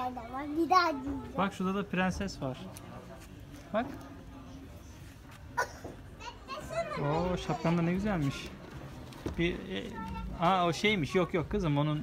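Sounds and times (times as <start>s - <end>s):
child talking: 0.0s - 1.3s, 6.2s - 8.4s, 9.9s - 10.4s.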